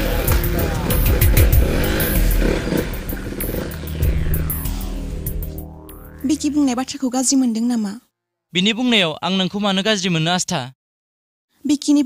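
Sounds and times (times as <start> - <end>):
motorcycle engine revving: 0.0 - 7.5
background music: 0.0 - 8.0.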